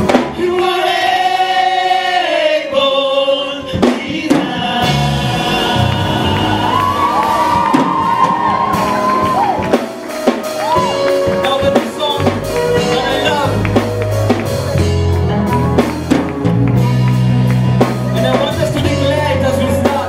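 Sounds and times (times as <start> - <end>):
band with drums and bass: 0.0 - 0.8, 3.6 - 20.0
group of vocalists singing: 0.1 - 7.9.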